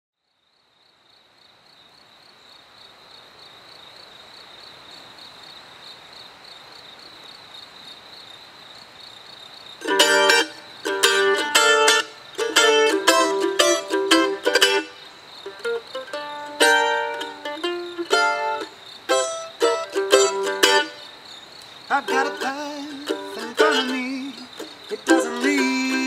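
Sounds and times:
faint hiss: 0:00.3 - 0:26.0
mandolin playing picked chords: 0:09.8 - 0:21.1, 0:21.9 - 0:26.0.

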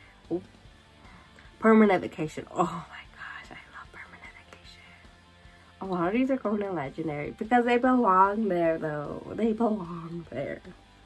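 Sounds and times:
faint pop music with vocals: 0:00.0 - 0:11.0.

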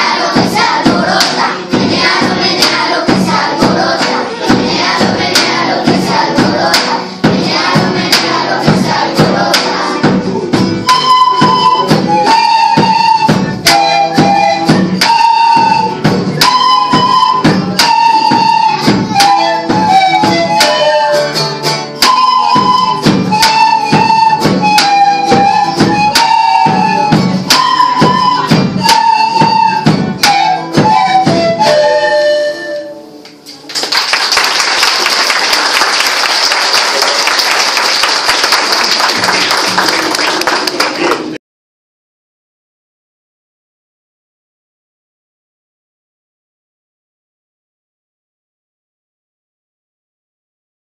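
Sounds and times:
steady drum beat: 0:00.0 - 0:16.6, 0:22.4 - 0:31.6
children's flute ensemble: 0:00.0 - 0:33.5
audience applause: 0:33.6 - 0:41.4.

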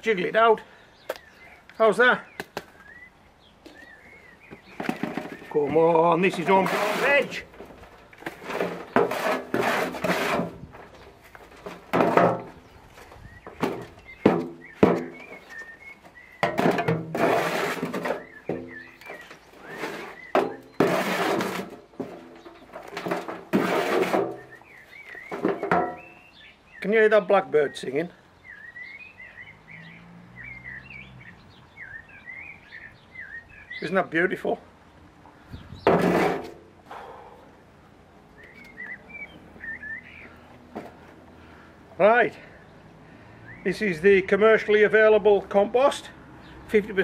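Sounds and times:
blackbird singing: 0:00.0 - 0:07.6, 0:12.4 - 0:17.1, 0:18.0 - 0:20.9, 0:24.3 - 0:36.0, 0:38.2 - 0:40.7, 0:41.5 - 0:47.0
shovel scraping compost: 0:04.7 - 0:26.2, 0:35.9 - 0:36.6.

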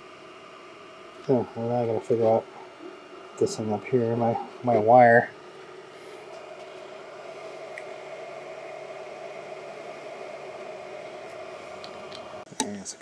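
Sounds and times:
low hum: 0:00.0 - 0:12.5
cooling fans whirring: 0:00.0 - 0:13.0.

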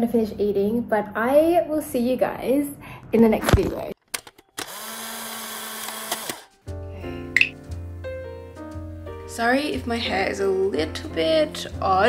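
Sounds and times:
small electric motor whirring: 0:04.6 - 0:06.5
background keyboard music with bass: 0:06.5 - 0:12.0.

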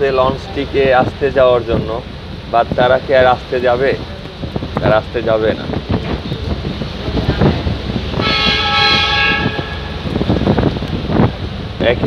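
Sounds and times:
wind noise on microphone: 0:00.0 - 0:12.0
horn blast: 0:08.1 - 0:10.1.

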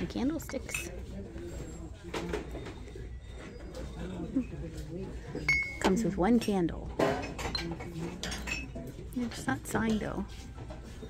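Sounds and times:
ceramic clinking against pottery: 0:05.3 - 0:09.0.

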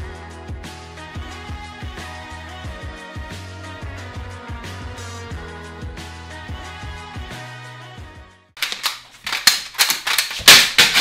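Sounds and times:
music with steady bass line: 0:00.0 - 0:08.4
hard objects clattering and banging: 0:08.6 - 0:11.0.

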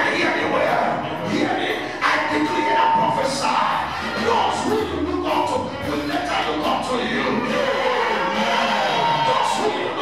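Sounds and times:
man's voice through microphone: 0:00.0 - 0:07.8, 0:09.0 - 0:10.0
church music: 0:00.0 - 0:10.0
congregation cheering and shouting: 0:00.0 - 0:10.0.

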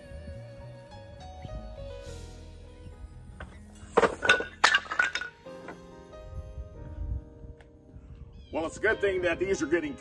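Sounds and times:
background music: 0:00.0 - 0:10.0
wood blocks clattering on concrete: 0:03.8 - 0:05.8.

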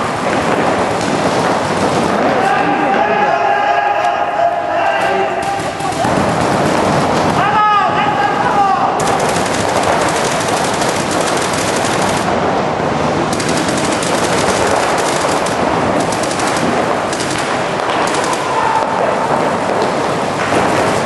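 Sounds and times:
paintball markers firing: 0:09.0 - 0:12.4, 0:13.3 - 0:20.9.

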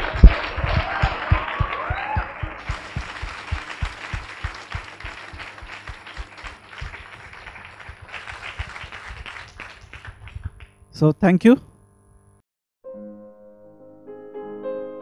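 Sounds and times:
audience applauding: 0:00.0 - 0:10.8.

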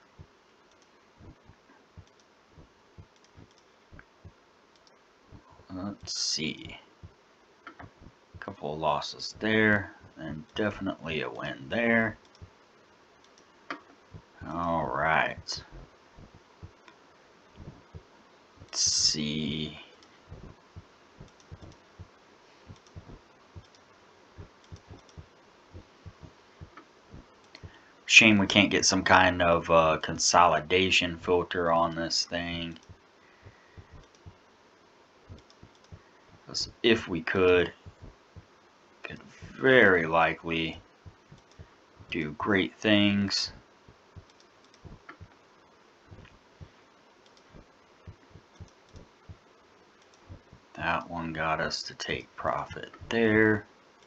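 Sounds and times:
computer mouse clicks: 0:00.7 - 0:01.4, 0:02.0 - 0:02.3, 0:03.0 - 0:04.1, 0:04.7 - 0:05.0, 0:12.2 - 0:12.5, 0:13.2 - 0:14.0, 0:21.2 - 0:21.8, 0:22.7 - 0:25.3, 0:33.8 - 0:34.3, 0:35.3 - 0:36.0, 0:41.3 - 0:41.7, 0:44.2 - 0:45.4, 0:47.2 - 0:49.1, 0:50.0 - 0:50.4.

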